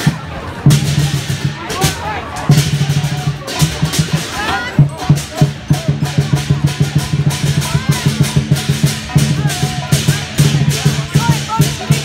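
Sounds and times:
big drum fast rolls: 0:00.0 - 0:12.0
crowd voices: 0:00.0 - 0:12.0.

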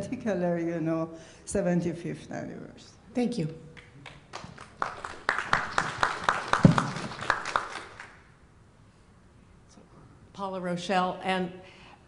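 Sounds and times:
audience applause: 0:04.0 - 0:08.2.

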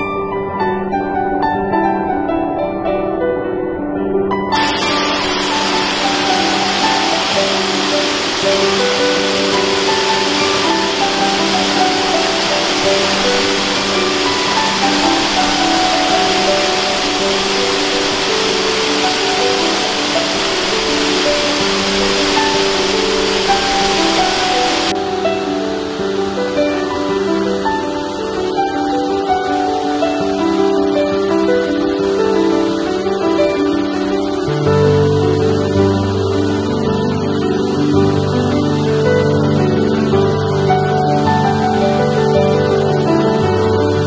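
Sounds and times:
slow ambient music: 0:00.0 - 0:44.0
waterfall rushing: 0:04.5 - 0:44.0.

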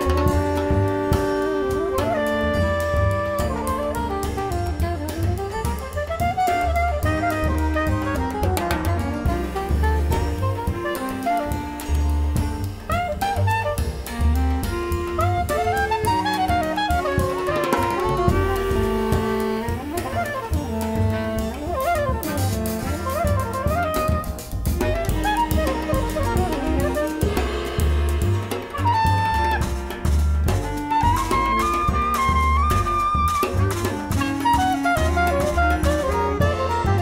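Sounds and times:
soprano saxophone melody: 0:00.0 - 0:30.0, 0:30.6 - 0:37.0
drum kit with cymbals: 0:00.0 - 0:37.0
low bass notes: 0:00.0 - 0:37.0.

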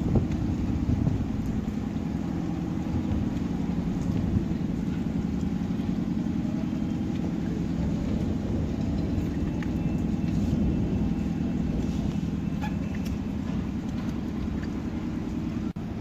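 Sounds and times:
rain on flooded pavement: 0:00.0 - 0:16.0.

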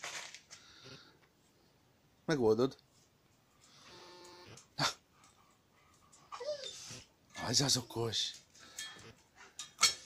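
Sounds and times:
dog whining: 0:06.3 - 0:07.1.

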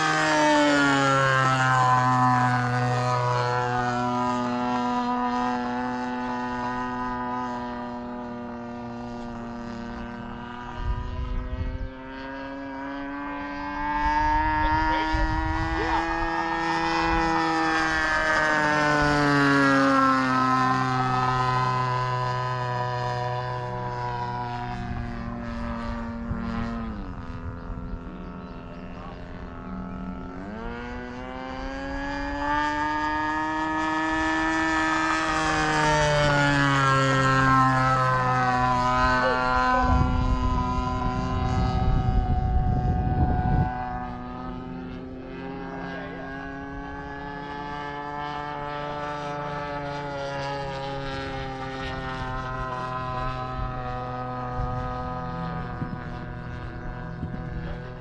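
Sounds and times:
model plane engine passing: 0:00.0 - 0:58.0.

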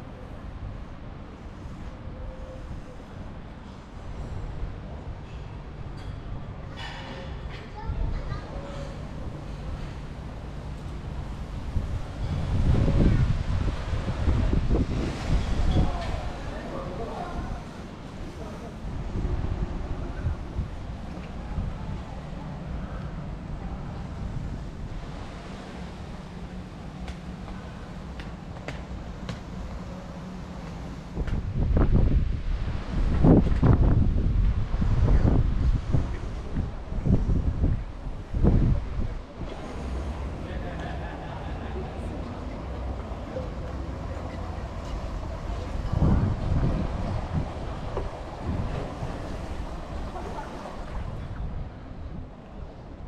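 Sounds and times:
wind buffeting microphone: 0:07.4 - 0:40.4, 0:41.6 - 0:53.0.

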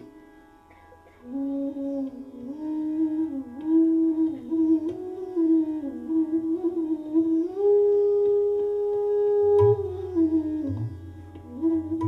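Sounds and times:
bamboo flute melody: 0:01.2 - 0:12.0.

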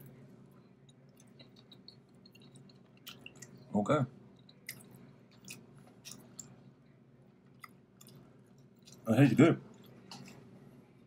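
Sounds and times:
chewing crunchy food: 0:00.0 - 0:10.8.

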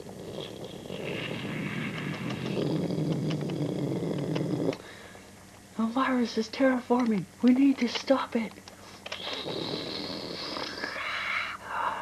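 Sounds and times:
low rasping growl-like rumble: 0:00.0 - 0:04.8.

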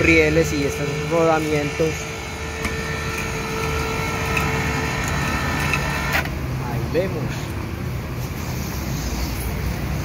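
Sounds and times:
electric hoist humming: 0:00.0 - 0:06.6.

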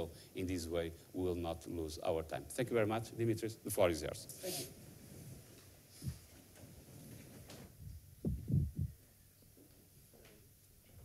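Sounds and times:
dull low thumps: 0:07.8 - 0:09.0.

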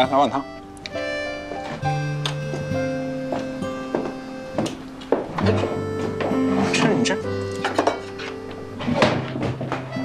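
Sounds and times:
soft instrumental music: 0:00.0 - 0:10.0.

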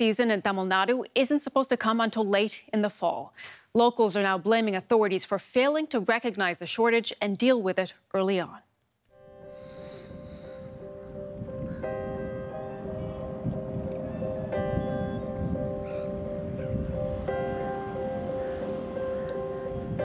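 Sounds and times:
music of sustained held notes: 0:09.1 - 0:20.0.

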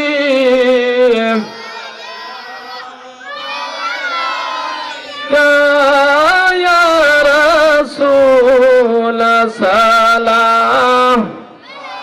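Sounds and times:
men and boys chanting in unison: 0:00.0 - 0:12.0.

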